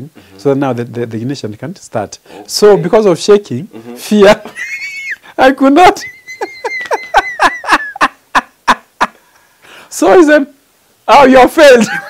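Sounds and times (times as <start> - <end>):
man laughing heartily: 3.8 - 5.3, 6.0 - 9.3.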